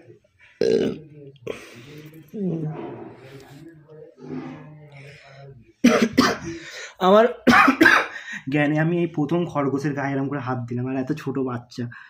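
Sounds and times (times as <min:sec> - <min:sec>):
man coughing: 0:05.8 - 0:06.7, 0:07.5 - 0:08.2.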